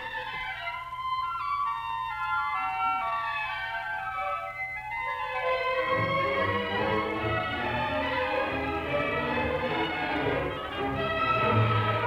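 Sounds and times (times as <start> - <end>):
orchestra playing bright melody: 5.6 - 12.0.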